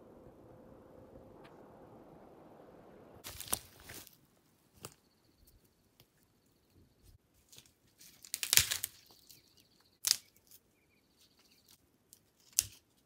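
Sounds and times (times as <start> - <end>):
twigs crackling and snapping: 3.2 - 6.2, 7.0 - 13.0.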